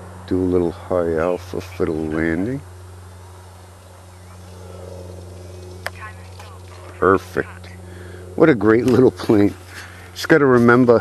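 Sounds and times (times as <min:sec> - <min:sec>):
low electrical hum: 0:00.0 - 0:11.0
electric model plane motor whir: 0:02.2 - 0:07.3.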